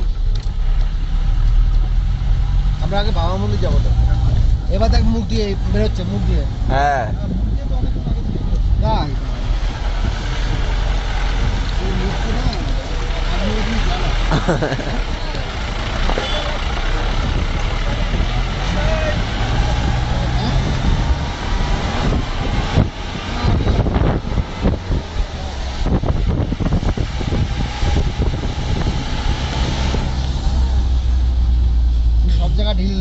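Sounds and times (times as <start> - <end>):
vehicle engine and road rumble: 0.0 - 33.0
people talking: 2.8 - 9.2, 11.6 - 20.8, 32.2 - 33.0.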